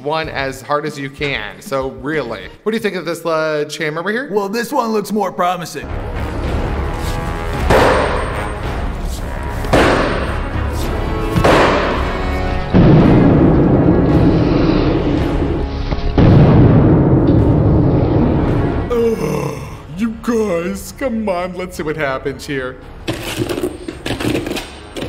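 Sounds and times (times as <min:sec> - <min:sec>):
loud background music: 0:05.8 - 0:25.0.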